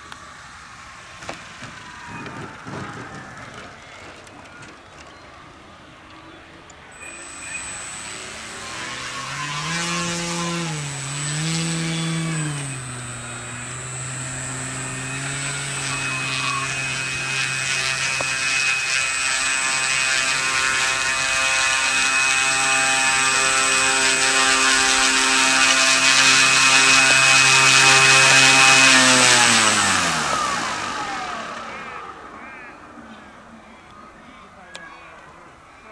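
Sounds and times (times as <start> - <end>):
model aircraft engine: 0.0 - 5.2, 6.2 - 33.8.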